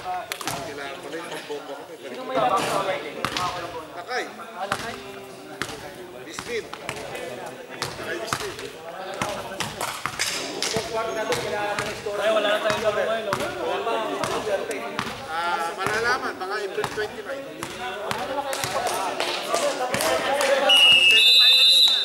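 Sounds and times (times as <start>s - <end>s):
overlapping voices: 6.5s - 22.0s
basketball bouncing on floor: 15.0s - 15.2s.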